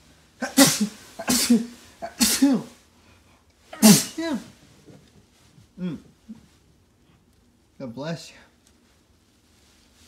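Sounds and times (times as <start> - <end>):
person sneezing: 0.4 - 2.8, 3.6 - 4.6.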